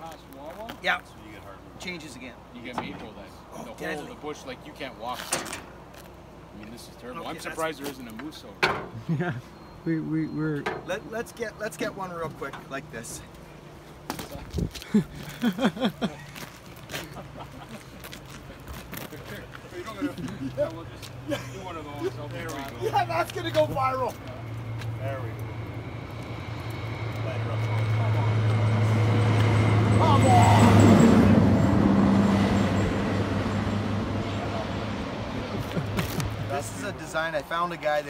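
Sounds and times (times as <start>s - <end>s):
road noise: 0.0s - 38.0s
vehicle engine hum: 0.0s - 38.0s
man laughing: 9.0s - 9.5s, 14.7s - 18.7s, 19.7s - 23.1s, 35.3s - 36.9s.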